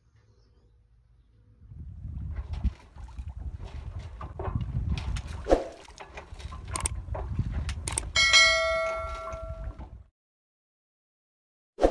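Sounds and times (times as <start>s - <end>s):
wind rumbling on microphone: 1.3s - 10.1s
clicks and knocks: 2.5s - 10.0s
notification bell chime: 8.2s - 9.6s.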